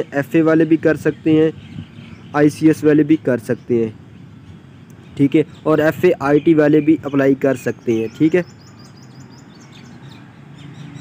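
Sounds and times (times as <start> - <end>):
birds chirping faintly: 0.0 - 11.0.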